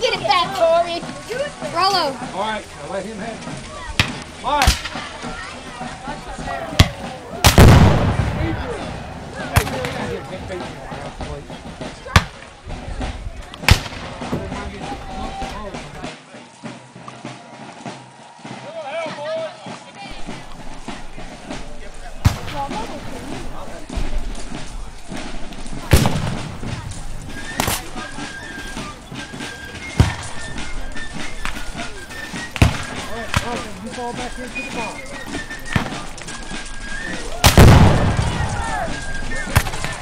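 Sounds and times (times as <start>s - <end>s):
black-powder gunshots: 6.8s - 10.6s, 13.6s - 14.4s, 25.8s - 26.8s, 37.4s - 38.9s, 39.5s - 40.0s.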